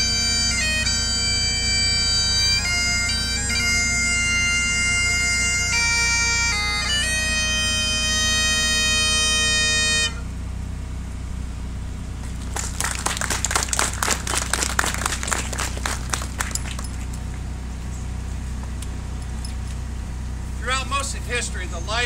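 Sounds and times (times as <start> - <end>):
bagpipes playing: 0.0 - 10.4
people clapping: 12.2 - 17.2.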